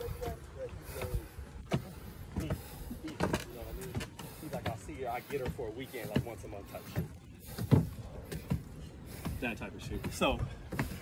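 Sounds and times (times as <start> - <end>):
footsteps on wooden steps: 0.0 - 11.0.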